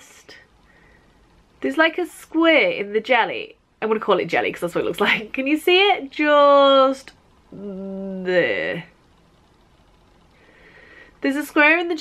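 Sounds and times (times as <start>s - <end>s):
faint breath drawn in: 0.6s - 1.4s, 10.3s - 11.2s.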